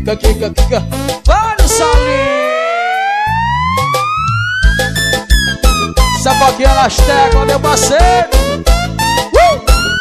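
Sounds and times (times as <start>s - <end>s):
bass and drums: 0.0s - 10.0s
rising electronic siren tone: 1.6s - 6.2s.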